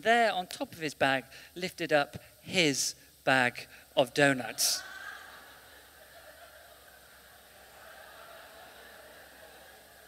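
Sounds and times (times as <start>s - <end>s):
distant audience laughter: 4.6s - 10.0s.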